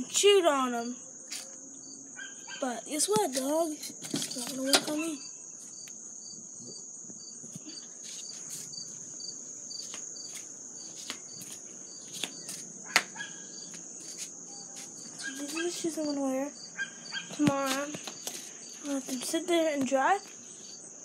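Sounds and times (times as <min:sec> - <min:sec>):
high-pitched insect trill: 0:00.0 - 0:21.0.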